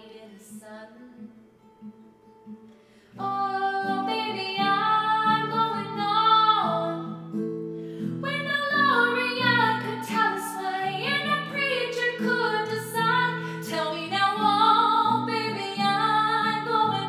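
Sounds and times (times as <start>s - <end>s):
woman singing: 0.0s - 1.7s, 3.1s - 7.4s, 8.0s - 17.0s
acoustic guitar: 0.0s - 17.0s.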